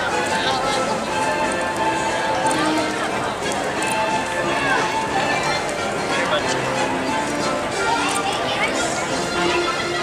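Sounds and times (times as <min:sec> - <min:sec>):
background music: 0:00.0 - 0:10.0
crowd talking: 0:00.0 - 0:10.0.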